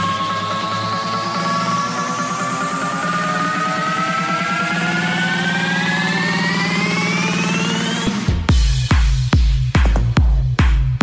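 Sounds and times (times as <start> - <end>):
synth riser climbing in pitch: 0.0 - 8.5
fast pulsing synth line: 0.0 - 8.8.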